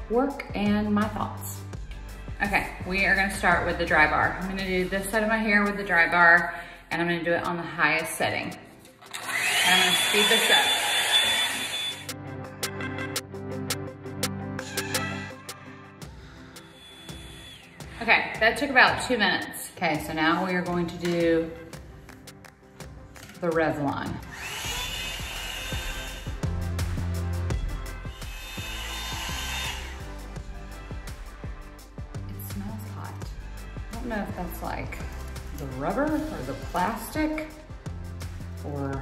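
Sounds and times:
background music with beat: 0.0 - 5.3, 12.0 - 39.0
blow-dryer rushing and whining: 9.1 - 12.1, 24.2 - 26.4, 28.1 - 30.2.

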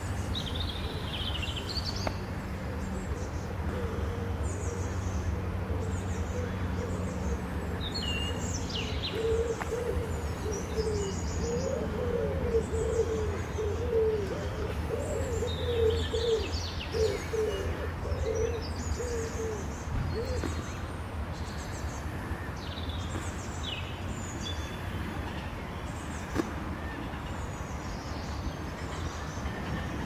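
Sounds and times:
pigeon cooing: 9.1 - 19.6.

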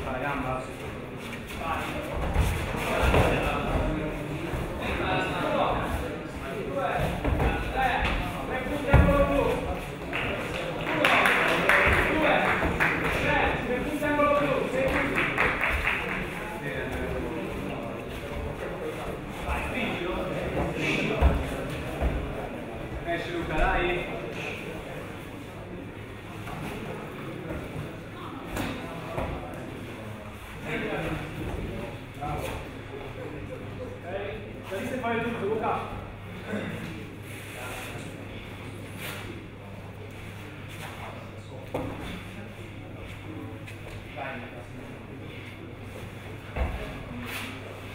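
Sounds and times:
indistinct chatter of many people: 0.0 - 47.9.

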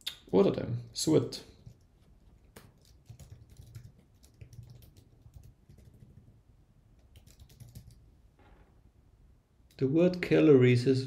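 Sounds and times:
typing on computer keyboard: 1.6 - 6.3, 7.0 - 8.0.

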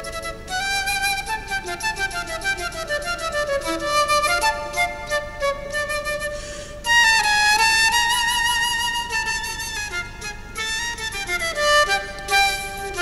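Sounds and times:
concert flute playing fast notes: 0.0 - 13.0
flute player breath: 6.2 - 6.9.

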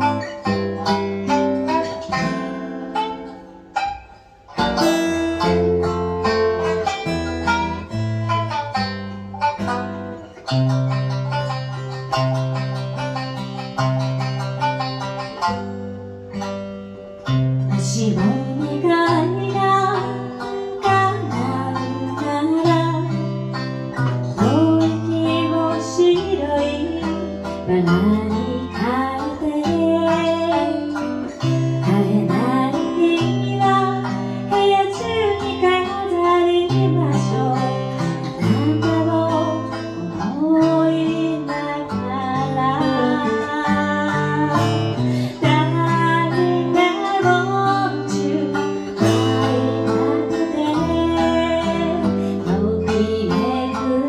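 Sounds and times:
acoustic guitar: 0.0 - 54.0
shamisen: 0.0 - 54.0
woman singing: 17.7 - 23.4, 24.0 - 54.0.

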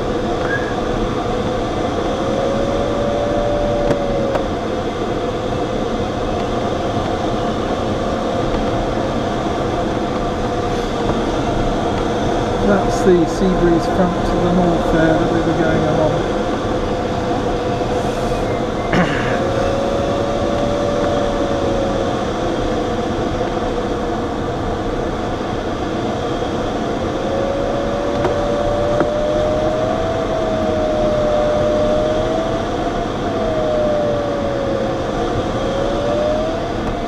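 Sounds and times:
variometer tone sliding in pitch: 2.1 - 4.5, 12.3 - 16.6, 17.5 - 22.3, 26.5 - 37.0.

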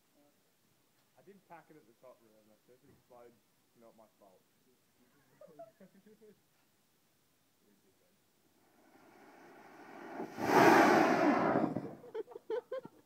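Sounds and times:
rushing burn flare: 8.6 - 12.1
sparkler bomb fizzing: 8.8 - 12.1.

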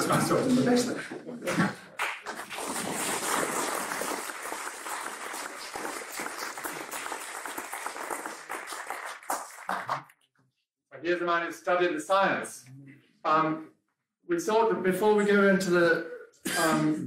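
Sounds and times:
audience applauding: 1.5 - 10.1.

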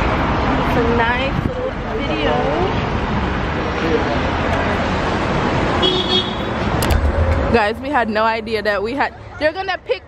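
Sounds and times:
roadside traffic noise: 0.0 - 10.0
car horn toot: 5.8 - 6.6.

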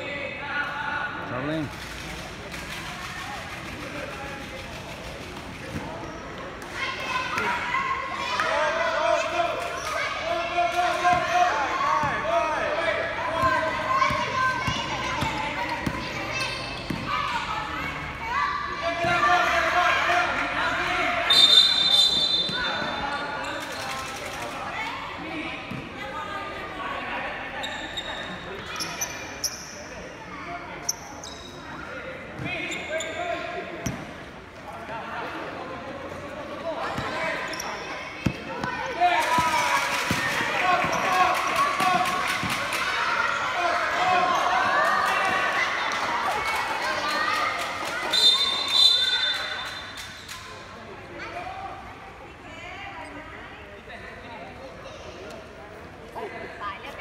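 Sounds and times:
people shouting and talking: 0.0 - 57.0.

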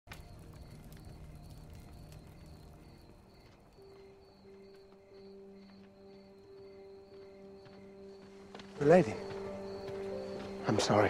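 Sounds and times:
campfire crackling: 0.1 - 11.0
crickets chirping: 0.1 - 11.0.

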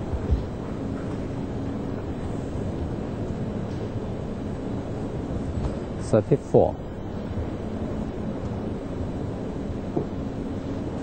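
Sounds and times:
quiet arena background noise: 0.0 - 11.0.

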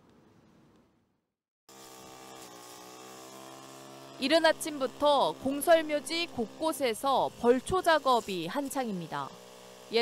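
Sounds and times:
brush cutter engine buzzing: 1.7 - 10.0.

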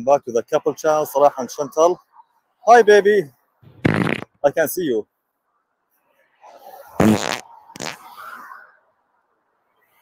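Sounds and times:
cartoon fart sound effect: 3.8 - 4.3, 7.0 - 8.0.

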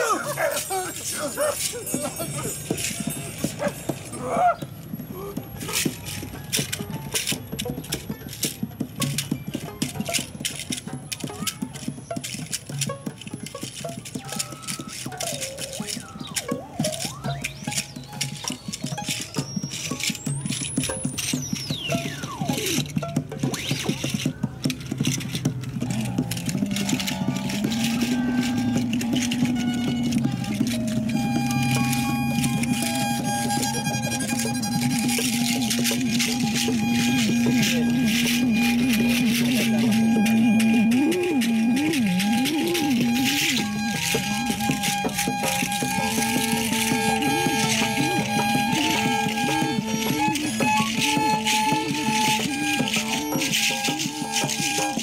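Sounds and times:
scattered clicks and taps: 0.0 - 55.0
violin: 0.0 - 55.0
tambourine clattering: 0.1 - 22.2
electronic drone tones: 25.8 - 55.0.

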